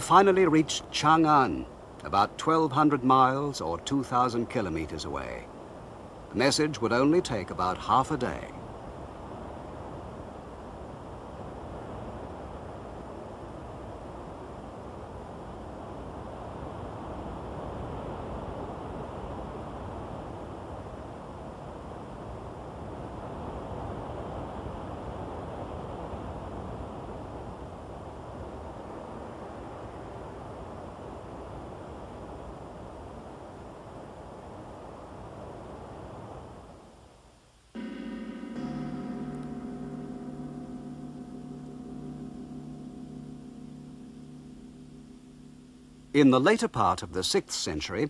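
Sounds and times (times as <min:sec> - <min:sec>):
wind blowing in gusts: 0:00.0 - 0:37.1.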